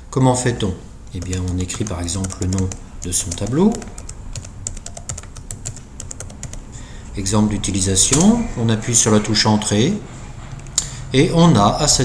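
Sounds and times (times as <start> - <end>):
computer keyboard typing: 1.1 - 6.7.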